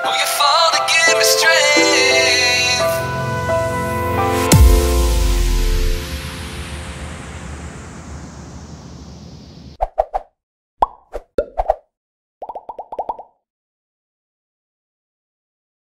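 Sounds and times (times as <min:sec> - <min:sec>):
electronic music chord: 0:01.2 - 0:08.9
cartoon pop sound effects: 0:10.8 - 0:11.8, 0:12.4 - 0:13.3.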